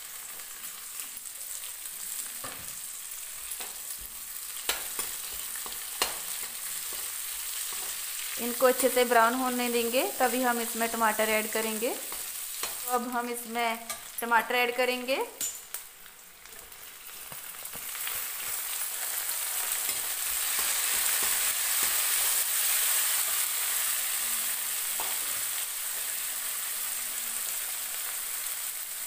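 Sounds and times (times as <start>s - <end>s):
vegetables sizzling in hot oil: 0.0s - 29.0s.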